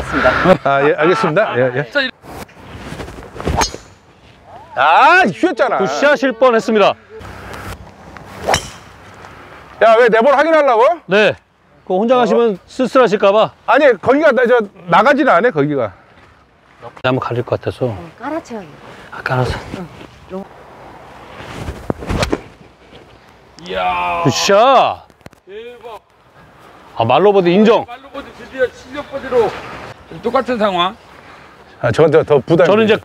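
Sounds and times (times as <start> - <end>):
golf club striking ball: 3.6 - 4.0, 8.4 - 9.0.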